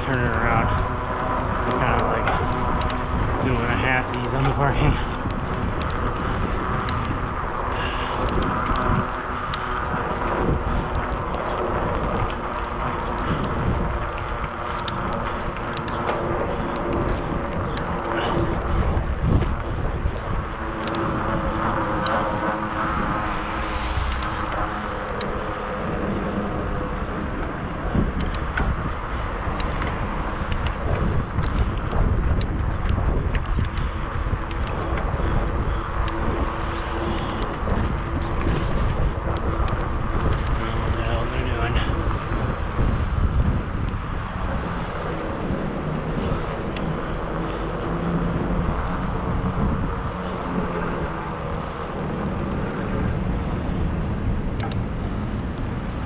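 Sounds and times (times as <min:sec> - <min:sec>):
clicks and rattles from road: 0:00.0 - 0:56.0
deep rumble: 0:00.0 - 0:56.0
passing car traffic: 0:00.0 - 0:56.0
wind on microphone: 0:00.0 - 0:56.0.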